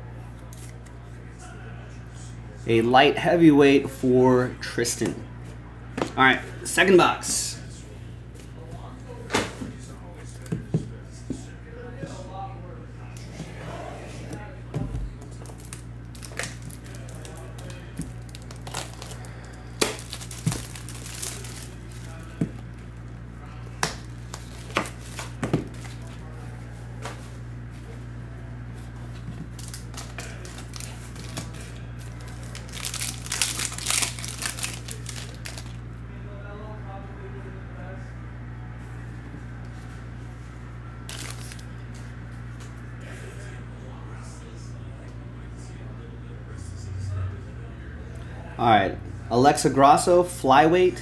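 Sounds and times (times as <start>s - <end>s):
steady low hum: 0.0s - 51.0s
plastic wrap crackling: 15.4s - 22.8s, 24.0s - 26.1s, 29.6s - 35.8s, 41.1s - 41.8s.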